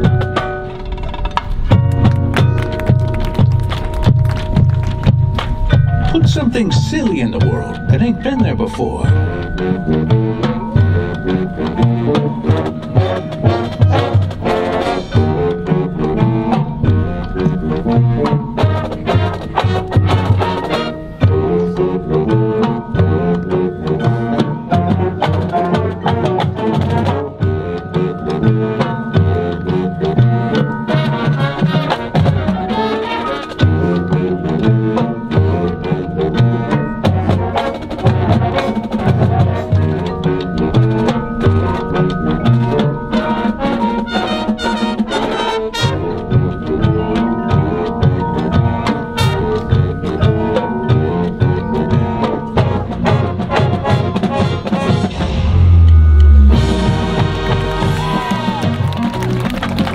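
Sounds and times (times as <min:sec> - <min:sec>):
drumline beat: 0:00.0 - 0:33.0, 0:42.4 - 0:59.9
brass winds: 0:00.0 - 0:59.9
mallet percussion: 0:00.0 - 0:59.9.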